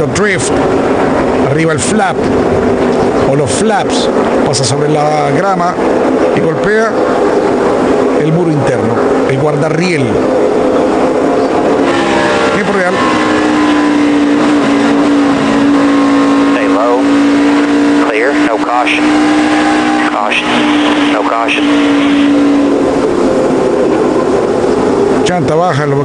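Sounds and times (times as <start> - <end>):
race car engine running: 0.0 - 26.0.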